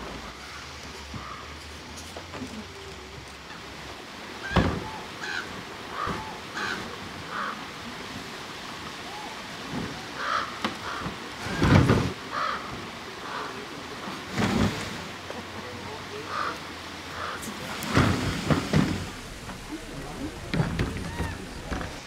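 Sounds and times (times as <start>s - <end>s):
bird calling: 4.4s - 7.6s, 10.2s - 13.5s, 16.2s - 22.0s
bear thumping plastic trash cart: 17.9s - 22.0s.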